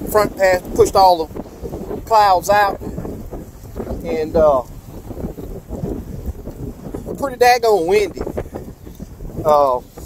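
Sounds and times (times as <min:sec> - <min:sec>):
strong wind buffeting microphone: 0:00.0 - 0:10.0.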